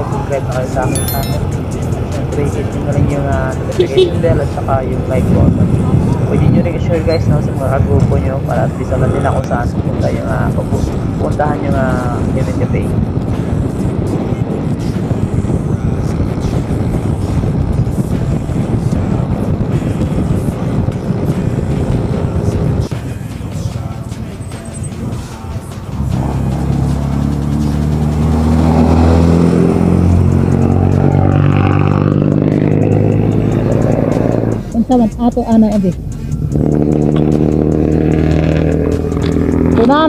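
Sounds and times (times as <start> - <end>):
rushing wind: 1.4 - 40.0
motorcycle engine: 3.8 - 4.5, 25.5 - 34.9, 36.0 - 40.0.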